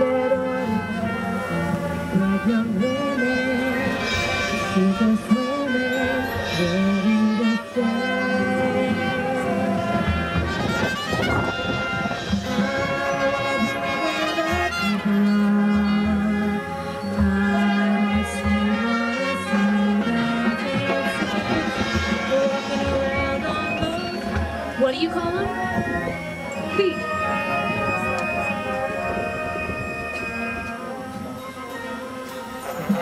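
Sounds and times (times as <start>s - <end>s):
marching band sustained chords: 0.0s - 33.0s.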